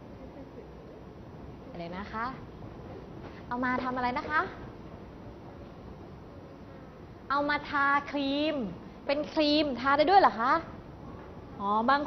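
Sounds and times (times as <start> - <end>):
faint recording hiss and hum: 0.0 - 12.0.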